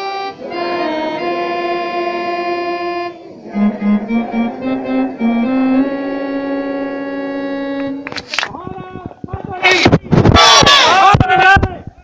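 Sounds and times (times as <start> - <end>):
electronic keyboard notes: 0.0 - 8.3.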